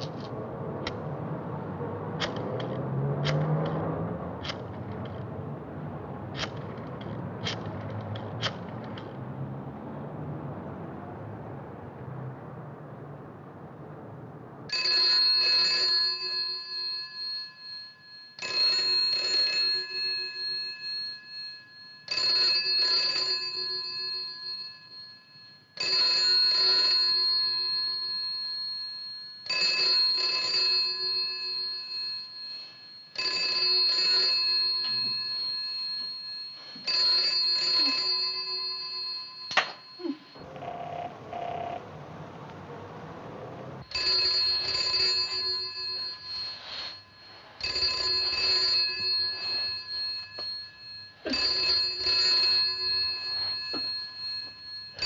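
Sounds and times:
telephone bell ringing: 0:14.7 - 0:41.9, 0:43.8 - 0:55.0.

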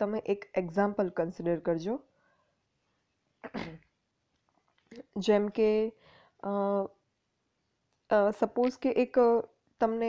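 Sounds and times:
woman coughing: 0:03.4 - 0:03.8.

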